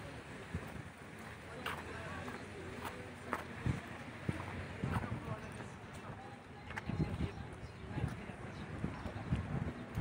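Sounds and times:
wind buffeting microphone: 3.4 - 5.7, 6.6 - 10.0.

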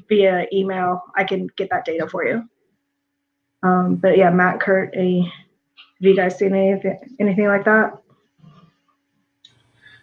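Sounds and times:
breath: 9.7 - 10.0.

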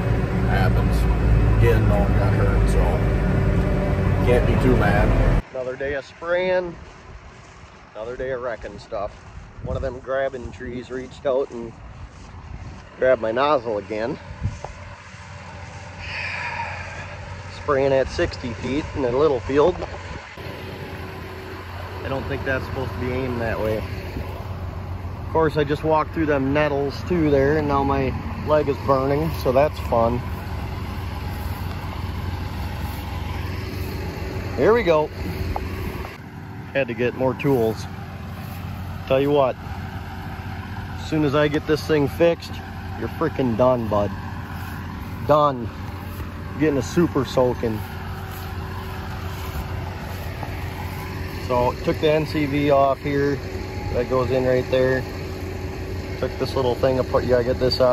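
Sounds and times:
engine idling low hum: 0.0 - 57.9.

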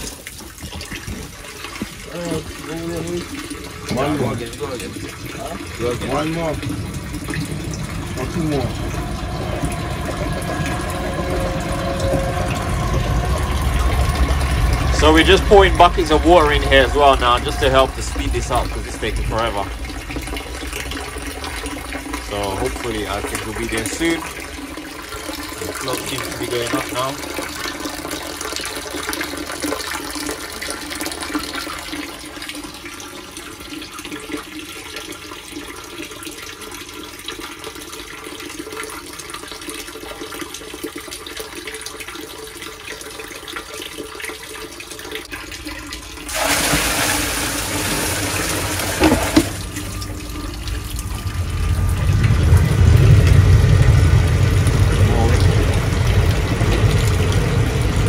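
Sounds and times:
rush of water: 0.0 - 33.4, 45.1 - 58.0
water trickling and splashing: 0.0 - 58.0
low rumble: 3.6 - 27.7, 47.3 - 58.0.

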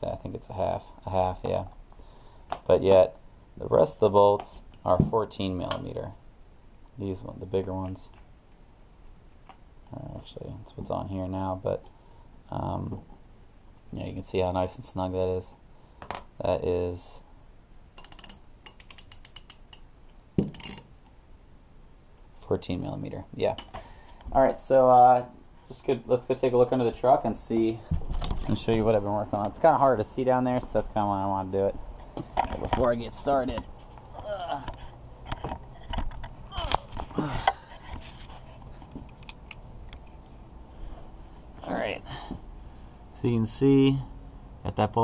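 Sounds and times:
ratchet metallic clicks and clinks: 18.0 - 19.9, 20.5 - 20.9.

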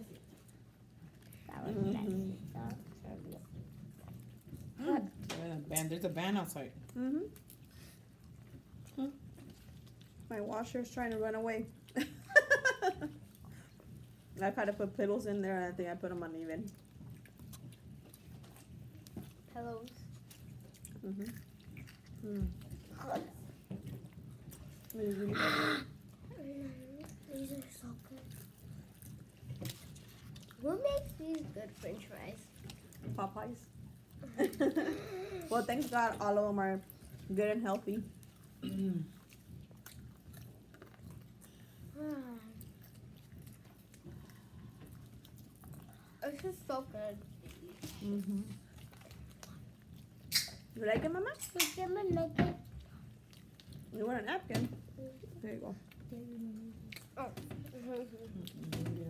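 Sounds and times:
person chewing food: 0.0 - 5.3, 6.8 - 10.4, 16.7 - 37.4, 38.0 - 50.8, 52.6 - 54.0, 54.8 - 59.0
washing machine rumbling: 0.0 - 7.3, 8.1 - 59.0
small mouth clicks: 49.4 - 50.7.

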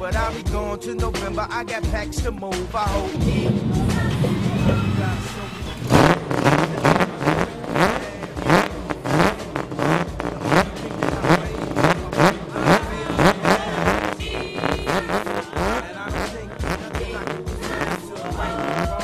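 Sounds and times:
car engine throttle blips: 2.7 - 19.0.

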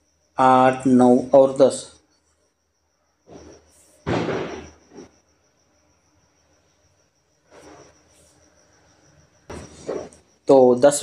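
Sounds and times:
cricket trilling: 0.0 - 11.0.

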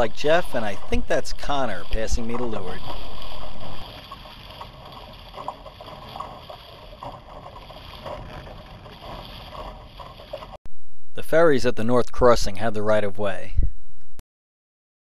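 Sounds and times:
water splashing against hull: 0.0 - 10.6.

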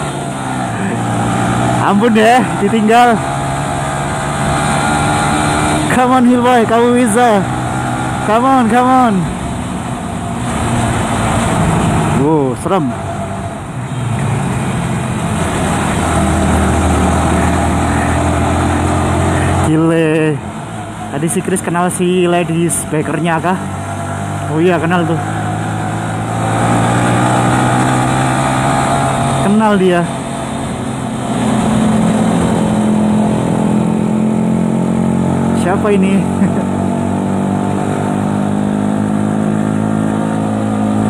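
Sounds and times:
wind and road noise: 0.0 - 41.0.

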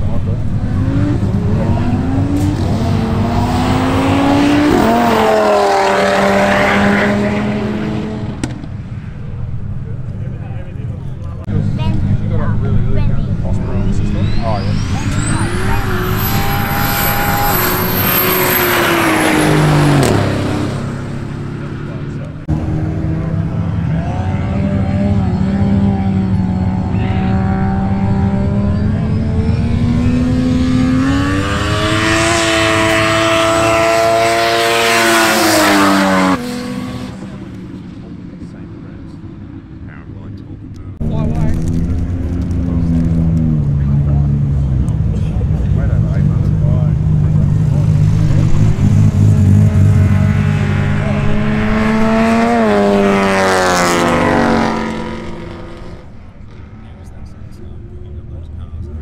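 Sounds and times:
race cars accelerating: 0.0 - 59.0.

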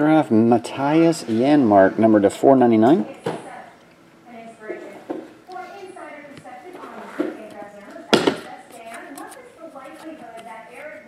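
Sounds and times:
low background talk: 0.0 - 11.0.

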